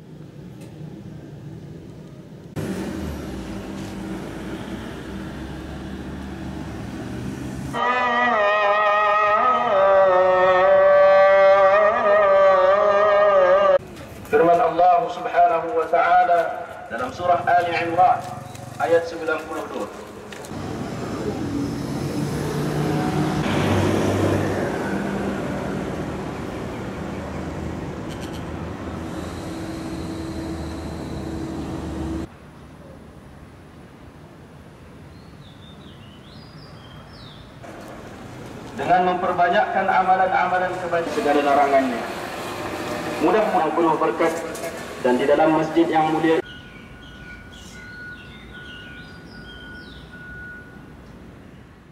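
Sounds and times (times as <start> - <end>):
road traffic noise: 0.0 - 51.9
vehicle engine droning past: 2.6 - 11.0, 20.5 - 32.3, 41.0 - 45.4
melodic chanted recitation: 7.7 - 13.8
low hum: 28.7 - 32.3.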